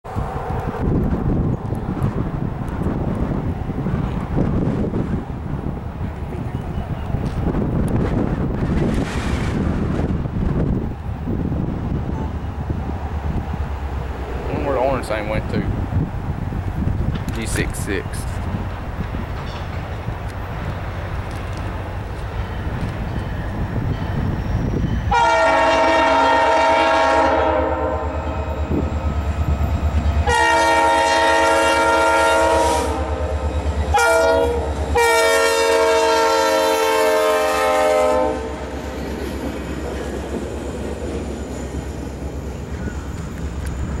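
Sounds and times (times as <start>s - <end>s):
freight cars rolling on rails: 0.1s - 25.8s, 38.5s - 44.0s
locomotive air horn: 25.1s - 28.6s, 30.2s - 33.3s, 33.9s - 38.7s.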